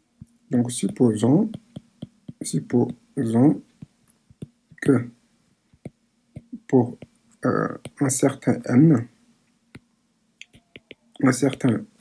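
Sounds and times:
stylus tapping on tablet screen: 0:00.2 - 0:03.0, 0:03.8 - 0:04.9, 0:05.8 - 0:08.1, 0:09.8 - 0:11.8.

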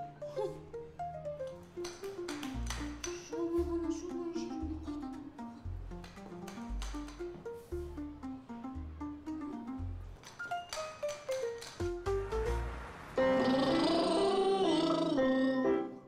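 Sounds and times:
light comedic music: 0:00.0 - 0:16.0.

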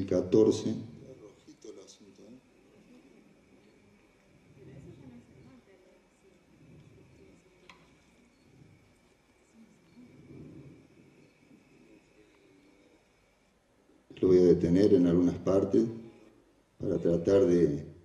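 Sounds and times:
faint voices murmuring: 0:00.0 - 0:17.8.

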